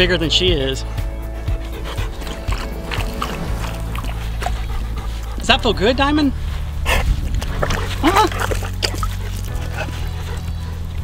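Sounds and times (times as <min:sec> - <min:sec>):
background music with low tones: 0:00.0 - 0:11.0
dog panting: 0:00.0 - 0:11.0.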